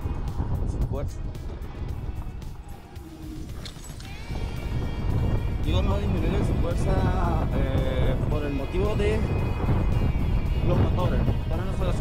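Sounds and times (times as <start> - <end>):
background music: 0.0 - 12.0
wind rumble on microphone: 0.0 - 12.0.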